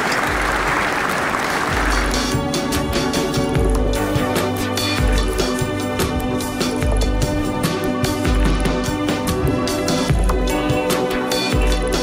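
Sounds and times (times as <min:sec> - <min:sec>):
audience applauding: 0:00.0 - 0:03.1
background music: 0:00.0 - 0:12.0.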